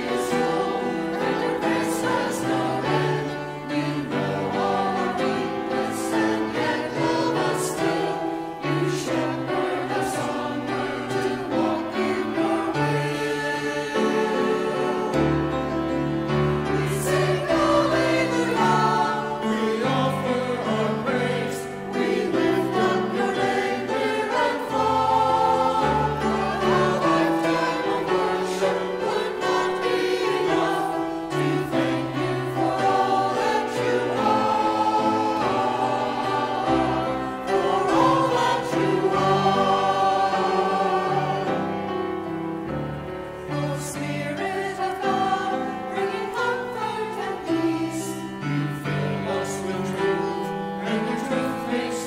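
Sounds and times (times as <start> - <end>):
church choir singing: 0.0 - 52.0.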